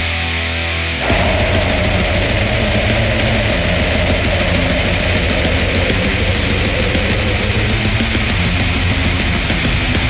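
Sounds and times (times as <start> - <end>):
death metal band: 0.9 - 10.0.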